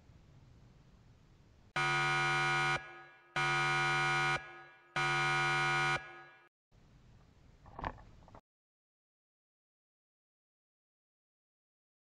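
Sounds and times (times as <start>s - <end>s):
harsh error buzzer: 1.8s - 6.5s.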